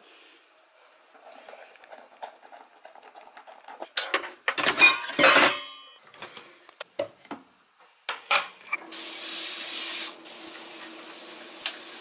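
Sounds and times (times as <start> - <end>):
dog eating from metal bowl: 1.0 - 5.1
cookware clattering: 3.9 - 6.0.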